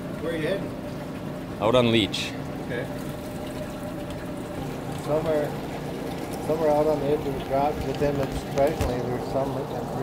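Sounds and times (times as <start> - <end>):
water trickling in tanks: 0.0 - 10.0.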